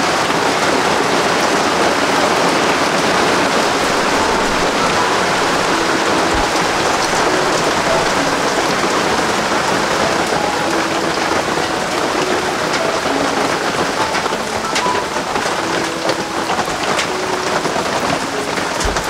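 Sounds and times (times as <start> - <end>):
steady rain falling: 0.0 - 19.0.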